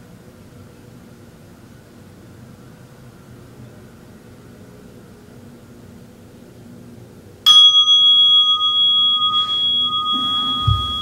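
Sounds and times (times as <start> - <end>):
faint room hum: 0.0 - 11.0
meditation bell ringing: 7.5 - 11.0.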